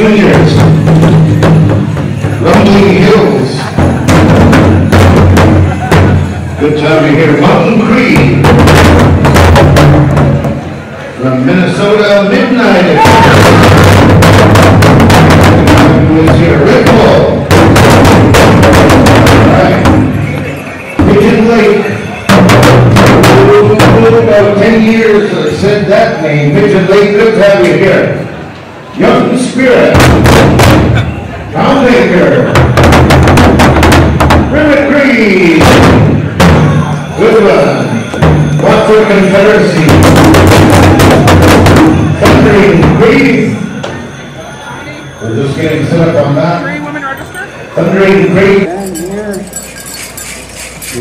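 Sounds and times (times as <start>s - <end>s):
powwow drum beats: 0.0s - 10.9s, 12.7s - 25.3s, 29.8s - 44.4s, 45.1s - 51.0s.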